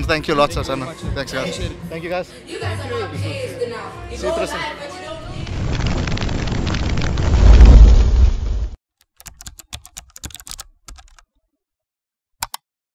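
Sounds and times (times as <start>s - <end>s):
whoosh into deep boom: 5.3s - 8.8s
computer keyboard typing: 9.0s - 11.2s.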